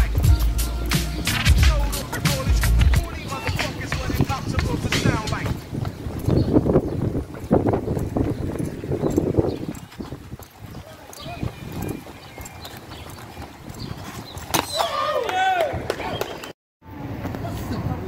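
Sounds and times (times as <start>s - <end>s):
bike rolling on concrete: 0.0s - 18.0s.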